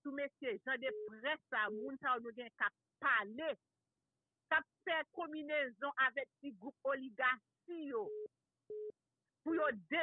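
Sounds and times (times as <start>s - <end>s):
short telephone beeps: 0.9s - 1.2s, 8.0s - 9.0s.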